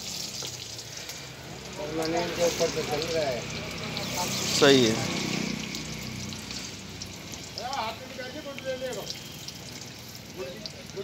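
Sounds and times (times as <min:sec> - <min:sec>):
oil sizzling and bubbling: 0:00.0 - 0:11.0.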